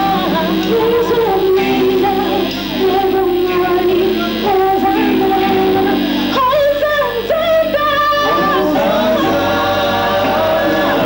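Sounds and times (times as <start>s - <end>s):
group of singers singing gospel: 0.0s - 6.4s, 7.1s - 11.0s
band playing: 0.0s - 11.0s.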